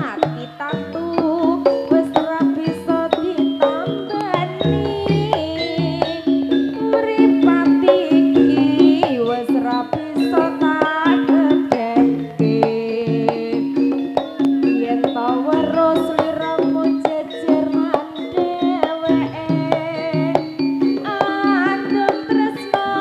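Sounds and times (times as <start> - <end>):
drum strokes: 0.0 - 23.0
woman singing with vibrato: 0.0 - 23.0
band of pitched instruments: 1.1 - 12.6, 13.3 - 23.0.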